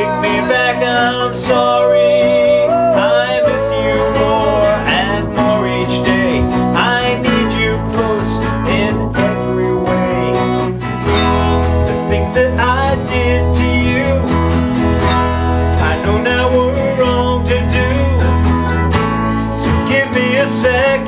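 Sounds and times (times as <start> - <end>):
man singing: 0.0 - 18.9, 19.6 - 21.0
acoustic guitar strumming: 0.0 - 21.0.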